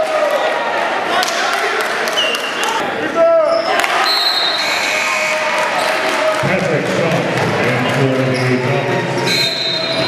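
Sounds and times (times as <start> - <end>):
voices of players and spectators: 0.0 - 10.0
sneakers squeaking on floor: 8.3 - 10.0.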